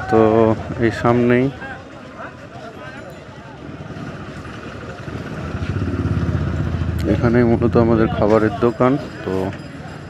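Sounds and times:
motorcycle engine running: 0:03.5 - 0:09.2.

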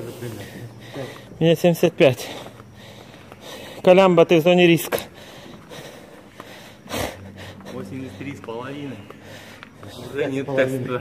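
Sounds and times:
footsteps on wooden boardwalk: 0:00.0 - 0:10.6.

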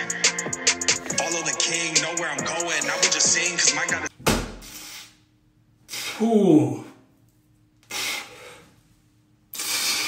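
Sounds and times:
forceful exhales through lips: 0:09.5 - 0:10.0.

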